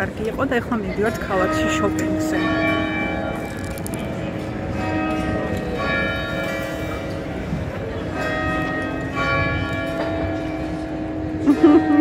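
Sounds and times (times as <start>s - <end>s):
church bells ringing: 1.0s - 12.0s.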